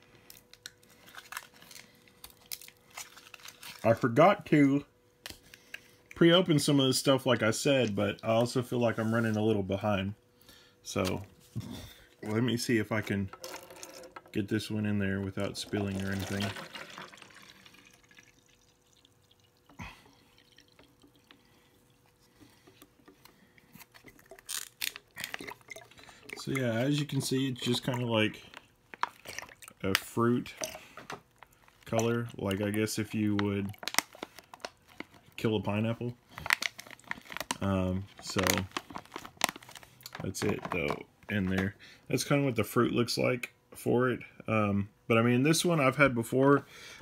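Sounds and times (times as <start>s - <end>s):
plastic bottle crinkling: 0.2s - 4.2s, 11.0s - 41.8s
juice pouring into glass bottle: 13.4s - 14.4s, 15.4s - 22.8s, 23.5s - 30.0s.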